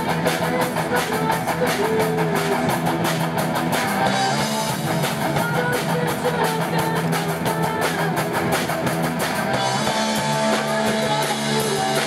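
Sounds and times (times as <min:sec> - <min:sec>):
drum kit: 0:00.0 - 0:12.0
electric guitars and bass: 0:00.0 - 0:12.0.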